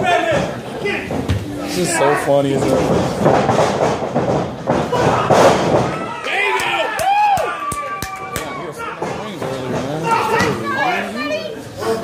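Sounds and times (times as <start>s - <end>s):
slaps and thuds in wrestling ring: 2.8s - 6.1s
crowd yelling and cheering: 4.9s - 9.1s.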